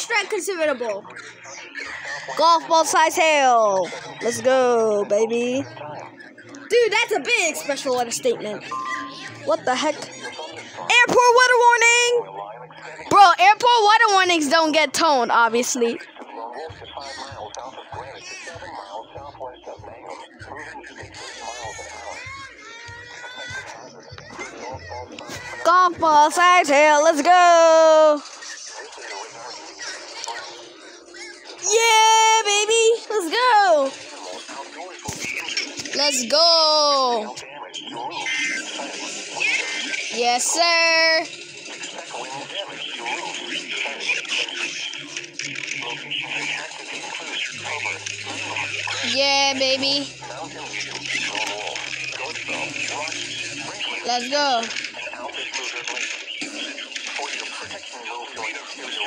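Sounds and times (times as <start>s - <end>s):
automated voice on radio: 8.2s - 25.8s, 32.5s - 59.0s
high wavering tone: 8.7s - 9.4s
person making speech-like sounds: 31.6s - 34.0s, 35.8s - 37.4s
radio hiss: 41.1s - 59.0s.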